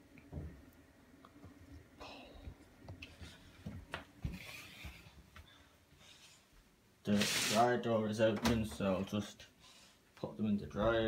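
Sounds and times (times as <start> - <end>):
footsteps on tiled floor: 2.9 - 5.6.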